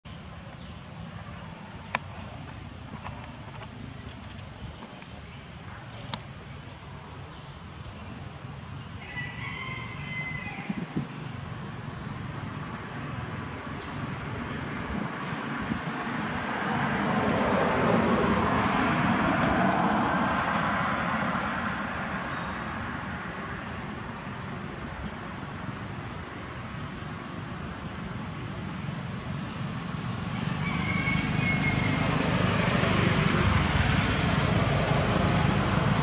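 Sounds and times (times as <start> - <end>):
rooster crowing: 9.0 - 11.0, 30.3 - 32.5
vehicle passing by: 11.2 - 24.4, 27.9 - 36.0.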